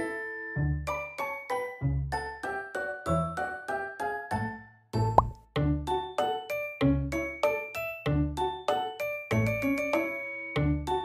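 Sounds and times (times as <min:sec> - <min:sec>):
cheerful plucked and mallet music: 0:05.0 - 0:11.0.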